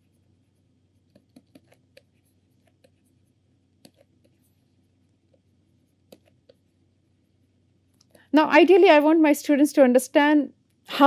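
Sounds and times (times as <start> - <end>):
stylus tapping on pen tablet: 1.0 - 3.0, 3.8 - 4.5, 5.2 - 6.7.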